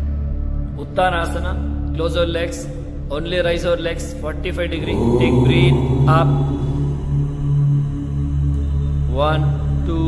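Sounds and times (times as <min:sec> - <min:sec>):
droning background music: 0:00.0 - 0:10.0
man counting: 0:04.6 - 0:06.8.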